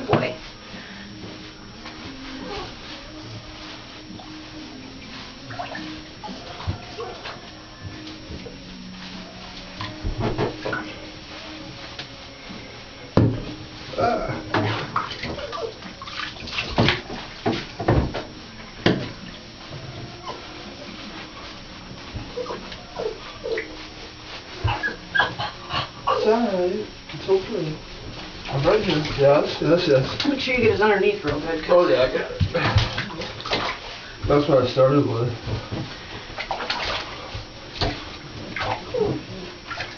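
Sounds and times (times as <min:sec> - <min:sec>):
water splashing in a bathtub: 0:00.0 - 0:39.9.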